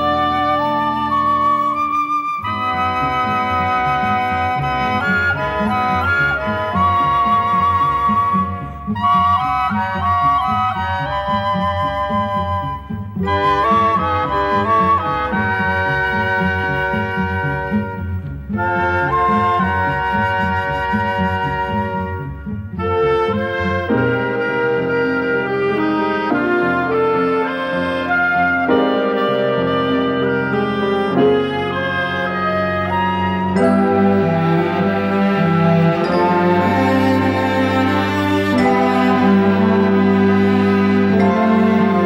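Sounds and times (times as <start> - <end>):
orchestral music with woodwind melody: 0.0 - 42.0.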